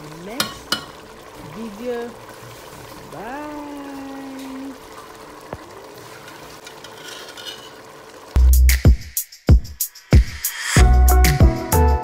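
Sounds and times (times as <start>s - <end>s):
spoon stirring in pot: 4.4s - 8.0s.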